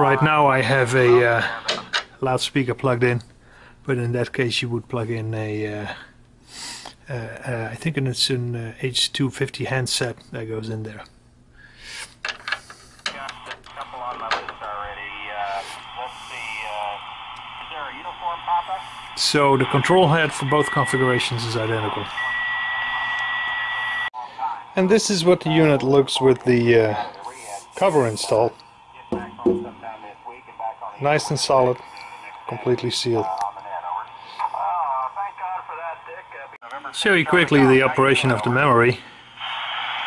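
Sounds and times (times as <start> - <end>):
radio hiss: 0.0 - 3.1, 11.8 - 40.0
thin radio speech over loudspeaker: 13.2 - 21.2, 27.0 - 38.9.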